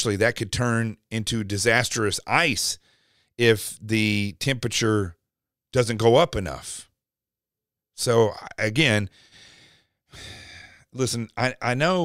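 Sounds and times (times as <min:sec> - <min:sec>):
man speaking: 0:00.0 - 0:02.8, 0:03.4 - 0:05.2, 0:08.0 - 0:09.1, 0:11.0 - 0:12.0
man breathing in: 0:02.8 - 0:03.4, 0:09.1 - 0:10.9.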